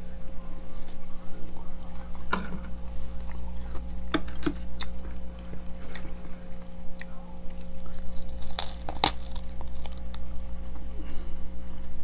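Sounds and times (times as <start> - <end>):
steady low hum: 0.0 - 12.0
frost crackling and crunching: 0.5 - 11.3.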